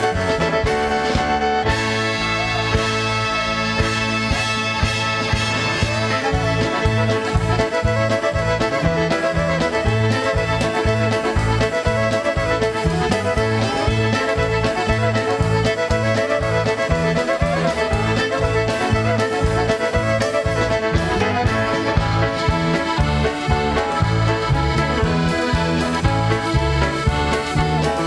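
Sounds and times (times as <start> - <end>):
clarinet: 0.0 - 28.0
fiddle melody: 0.0 - 28.0.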